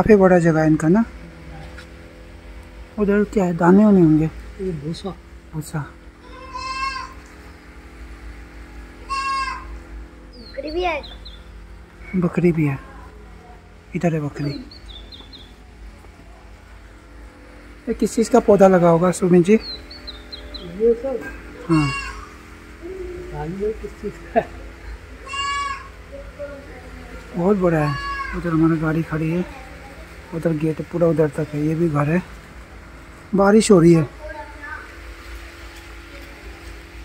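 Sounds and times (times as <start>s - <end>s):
goat kid bleating: 6.2s - 7.3s, 9.0s - 9.8s, 21.2s - 22.4s, 25.2s - 26.0s, 27.6s - 28.7s.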